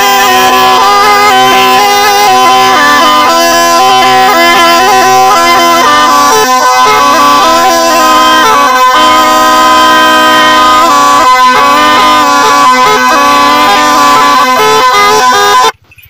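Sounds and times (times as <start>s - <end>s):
reedy pipe melody over drone: 0.0s - 15.8s.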